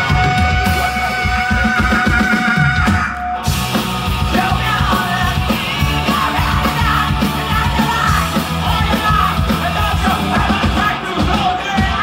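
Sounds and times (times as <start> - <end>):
bass guitar: 0.0 - 12.0
distorted electric guitars: 0.0 - 12.0
drum kit beat: 0.0 - 12.0
singer shouting: 4.3 - 12.0.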